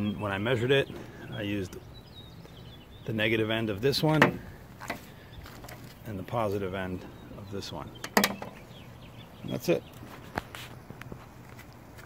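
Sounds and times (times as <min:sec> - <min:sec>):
soft footsteps and scuffs: 0:10.0 - 0:12.0.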